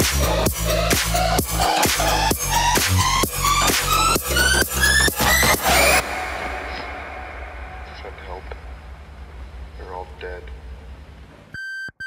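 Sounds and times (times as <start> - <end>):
low hum: 2.2 - 11.6.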